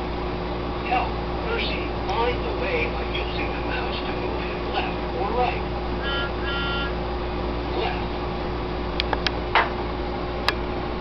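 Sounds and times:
steady hum: 0.0 - 11.0
short electronic beeps: 6.0 - 7.0.

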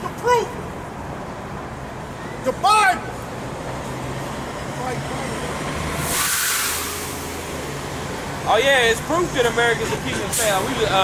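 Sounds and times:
air brake hiss: 6.0 - 7.4.

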